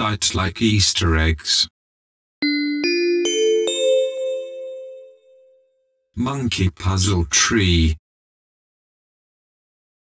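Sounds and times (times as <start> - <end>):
rising bell-like chime: 2.4 - 5.8.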